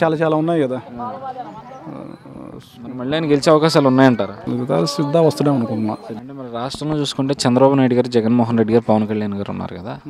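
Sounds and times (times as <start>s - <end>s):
men speaking: 0.0s - 10.0s.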